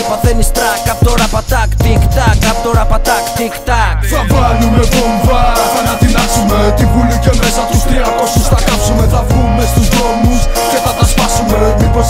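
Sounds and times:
bass-heavy hip hop beat: 0.0 - 12.0
person rapping: 0.0 - 12.0.

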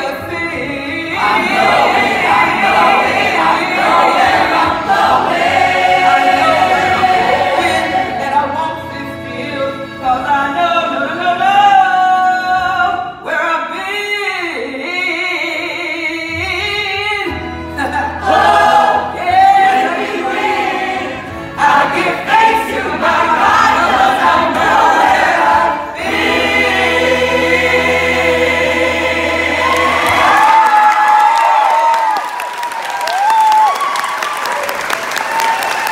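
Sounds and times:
chorus singing: 0.0 - 13.4, 17.8 - 30.9
gospel backing track: 0.0 - 32.4
people clapping: 29.6 - 35.9.

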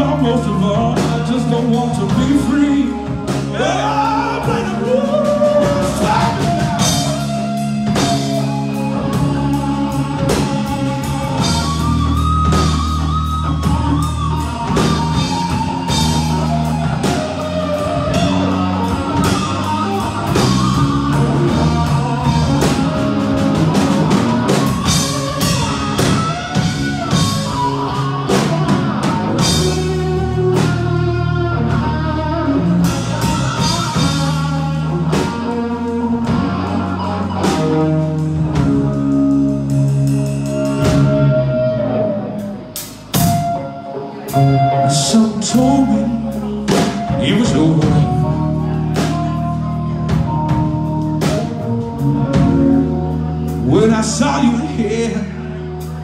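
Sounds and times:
live rock band: 0.0 - 56.0.

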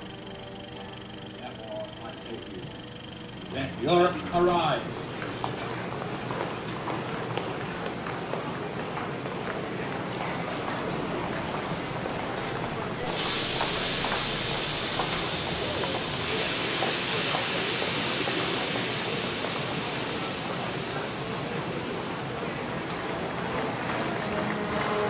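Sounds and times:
station noise: 10.4 - 25.0
compressed air hissing: 12.2 - 22.8.

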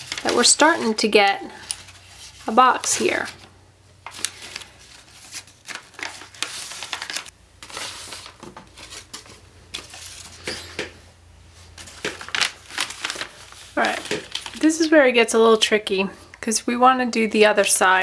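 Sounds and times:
paper rustling and crinkling: 0.0 - 11.0, 11.6 - 14.7.

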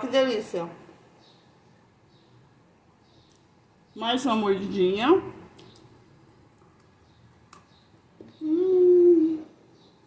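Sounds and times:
woman humming mmm while eating: 8.4 - 9.6.

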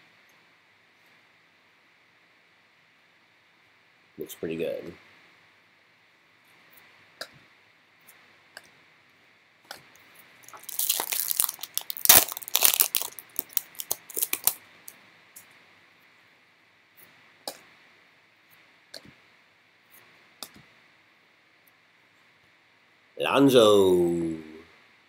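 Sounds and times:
foil wrapper tearing and crinkling: 10.4 - 14.6.

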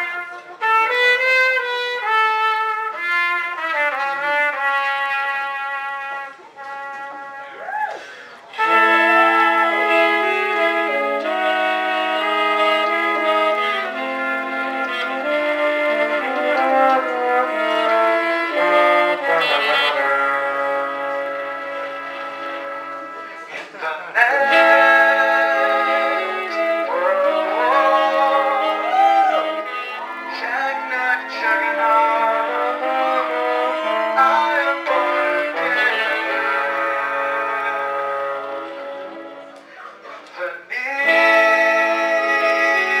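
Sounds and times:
horn section playing chords: 0.0 - 7.6, 8.2 - 43.0.

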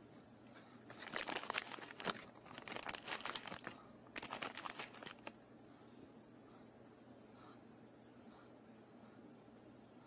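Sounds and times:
plastic crinkling: 0.9 - 5.4.

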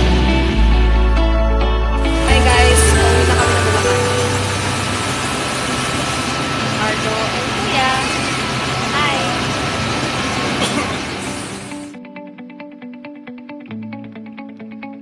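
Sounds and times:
vehicle engines din: 2.0 - 11.9
voices speaking: 2.2 - 11.7.

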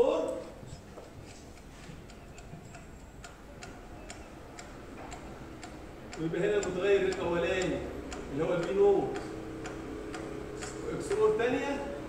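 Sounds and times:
sharp ticking: 1.5 - 12.0.

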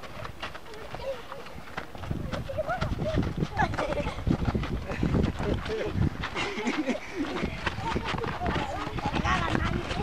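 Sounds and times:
children calling and chattering: 0.0 - 10.0
running feet on dirt: 0.0 - 10.0.

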